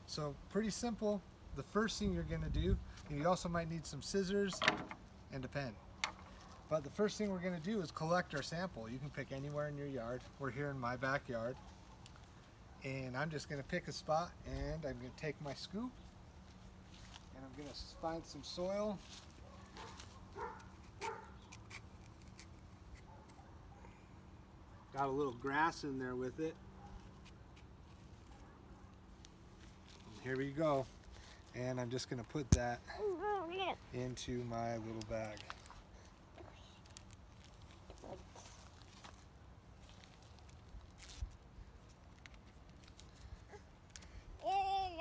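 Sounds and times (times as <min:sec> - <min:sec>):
plastic crinkle: 0:34.9 - 0:44.1
light clicks and rustling: 0:39.9 - 0:44.2.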